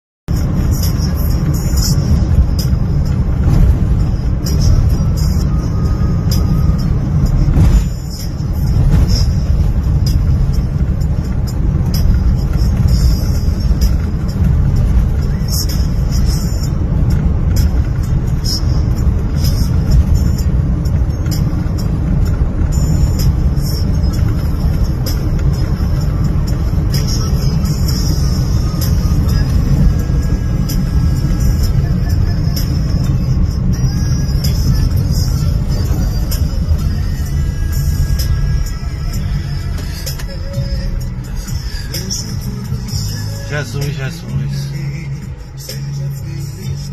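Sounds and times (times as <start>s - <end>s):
vehicle rumble on rough road: 0.3s - 46.9s.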